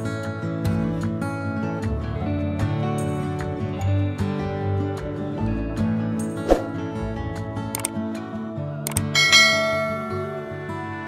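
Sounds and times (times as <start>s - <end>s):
soft acoustic guitar music: 0.0s - 11.0s
bright bell chime: 9.2s - 10.4s.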